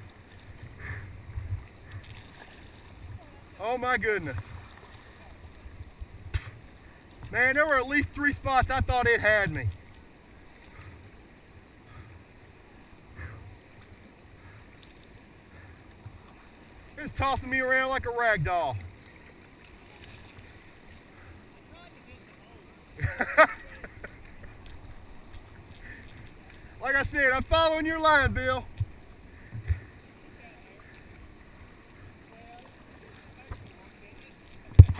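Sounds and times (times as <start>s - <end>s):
kayak paddle splashes: 0.0s - 34.9s
river water flowing: 0.0s - 34.9s.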